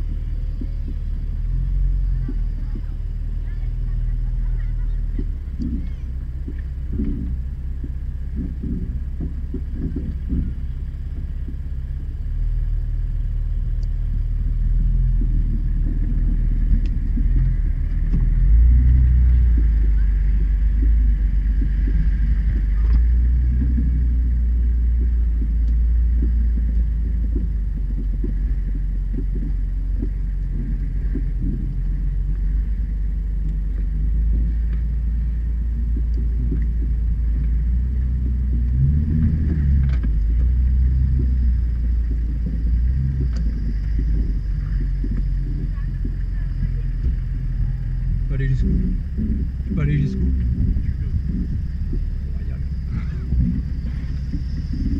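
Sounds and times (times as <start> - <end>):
vehicle engine low rumble: 0.0 - 54.9.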